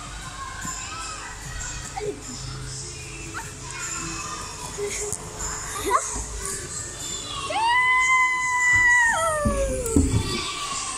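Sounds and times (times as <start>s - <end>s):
child yelling: 8.9s - 10.4s
low thumps and knocks: 9.2s - 10.6s.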